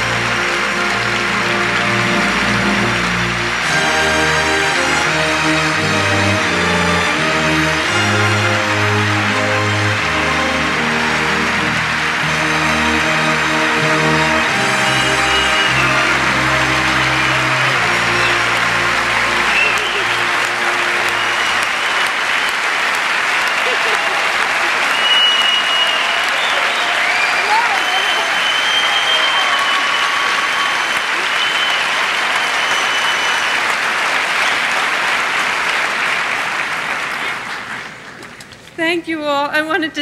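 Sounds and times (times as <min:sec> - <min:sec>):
orchestra music: 0:00.0 - 0:34.6
people cheering: 0:00.0 - 0:38.1
audience applauding: 0:00.0 - 0:38.7.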